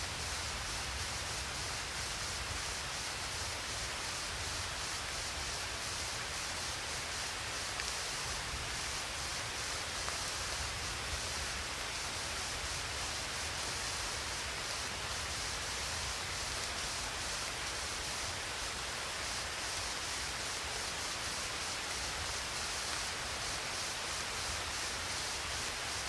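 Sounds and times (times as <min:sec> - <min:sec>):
steady hiss with low rumble: 0:00.0 - 0:26.0.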